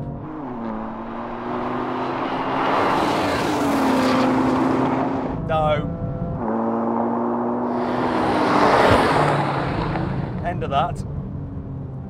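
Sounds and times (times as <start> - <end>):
car engine at speed: 0.0 - 12.0.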